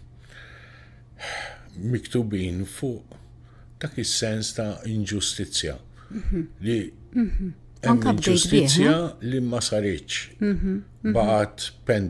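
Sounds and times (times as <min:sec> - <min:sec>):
man breathing in: 0:00.2 - 0:01.7
man speaking: 0:07.8 - 0:10.3, 0:11.1 - 0:12.0.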